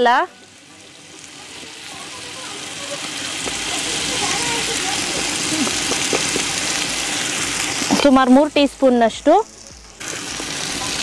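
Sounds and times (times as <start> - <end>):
food sizzling in a pot: 0.0 - 11.0.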